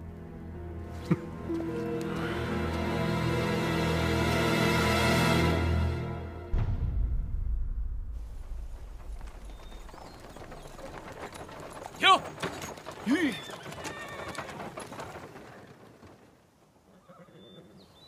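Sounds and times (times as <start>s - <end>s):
hooves on dirt track: 1.0s - 3.2s, 8.2s - 17.6s.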